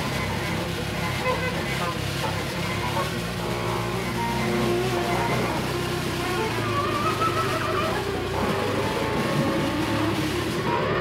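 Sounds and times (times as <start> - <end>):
low drone: 0.0 - 11.0
noise music with guitar and electronics: 0.0 - 11.0.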